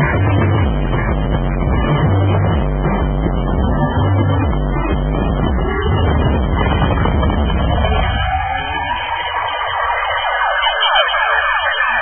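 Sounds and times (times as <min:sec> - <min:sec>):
bass line: 0:00.0 - 0:12.0
siren-like synth sweeps: 0:05.2 - 0:12.0.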